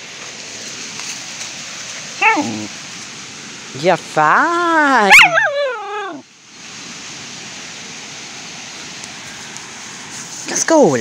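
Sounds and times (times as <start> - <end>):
steady hiss: 0.0 - 11.0
dog whining: 2.2 - 2.7, 5.0 - 6.2.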